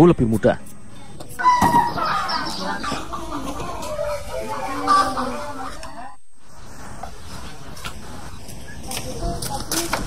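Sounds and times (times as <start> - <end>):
chickens clucking: 1.1 - 6.2.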